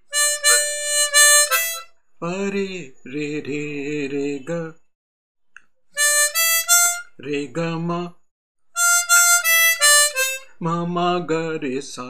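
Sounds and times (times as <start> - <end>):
man singing unaccompanied: 0.2 - 4.8, 6.7 - 8.2, 10.4 - 12.0.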